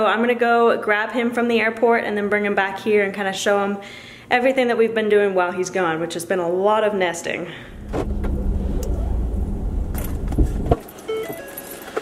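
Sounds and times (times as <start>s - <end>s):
car engine and road rumble: 7.7s - 10.9s.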